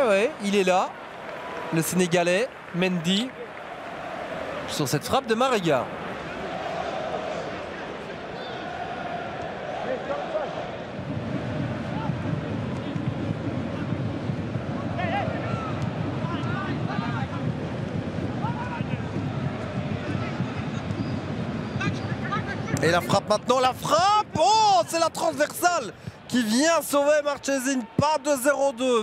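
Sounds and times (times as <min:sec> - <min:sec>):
stadium ambience: 0:00.0 - 0:29.0.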